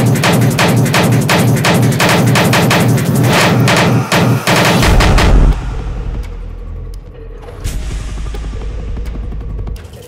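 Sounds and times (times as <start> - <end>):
distorted percussive hits: 0.0 - 10.0
deep bass: 4.6 - 10.0.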